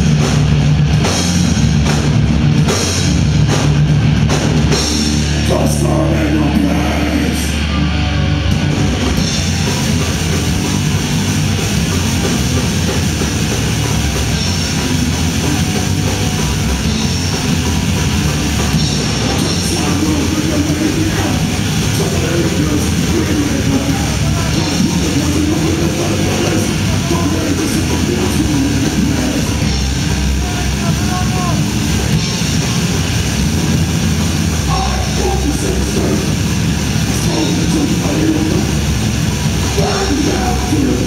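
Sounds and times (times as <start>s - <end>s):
drum kit with crashing cymbals: 0.0s - 6.7s, 8.5s - 41.0s
distorted electric guitars: 0.0s - 41.0s
punk band playing live: 0.0s - 41.0s
singer shouting into microphone: 30.3s - 31.7s, 34.7s - 36.4s, 39.8s - 41.0s.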